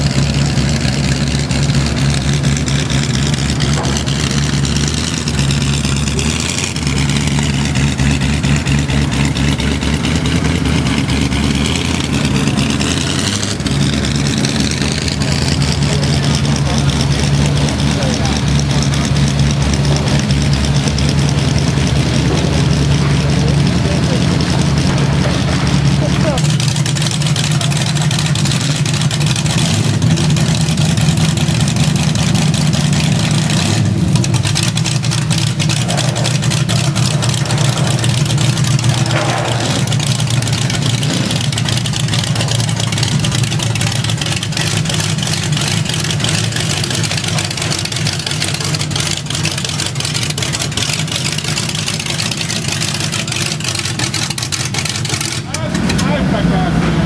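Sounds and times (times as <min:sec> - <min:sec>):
car engines idling loudly: 0:00.0 - 0:57.0.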